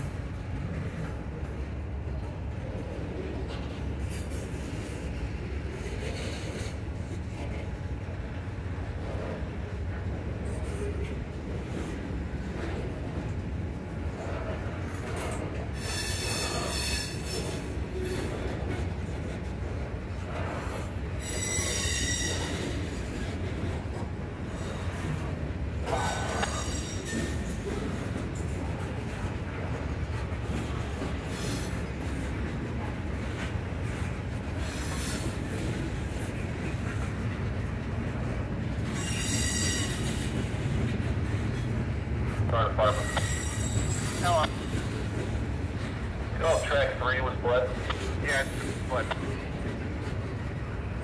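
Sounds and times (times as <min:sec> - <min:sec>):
train wheels rumbling on rail: 0:00.0 - 0:51.0
train wheels squealing: 0:15.2 - 0:18.5, 0:20.4 - 0:23.4, 0:24.5 - 0:28.0, 0:31.2 - 0:31.8, 0:34.6 - 0:35.5, 0:38.8 - 0:40.4, 0:42.8 - 0:45.0
high-pitched wheel squeal: 0:15.8 - 0:17.6, 0:21.2 - 0:22.8, 0:26.0 - 0:27.5, 0:39.0 - 0:40.3, 0:43.0 - 0:44.2.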